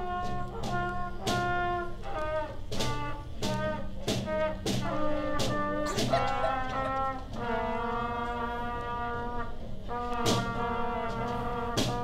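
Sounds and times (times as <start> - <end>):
trumpets playing held notes: 0.0 - 12.0
drum hits: 2.7 - 7.8.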